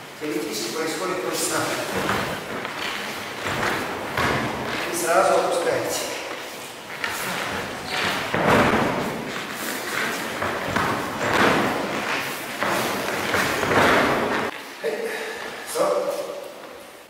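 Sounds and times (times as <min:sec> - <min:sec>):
body thudding on mats: 0:01.9 - 0:04.9, 0:07.0 - 0:14.5.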